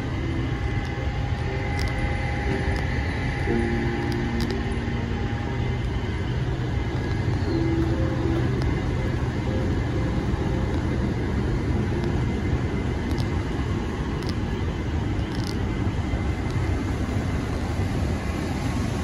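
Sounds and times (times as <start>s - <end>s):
faint hum: 0.0s - 19.0s
machinery hum: 0.0s - 19.0s
traffic hum: 0.0s - 19.0s.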